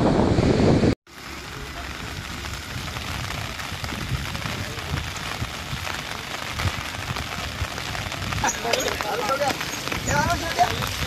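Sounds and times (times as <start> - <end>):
steady rain falling: 1.1 - 11.0.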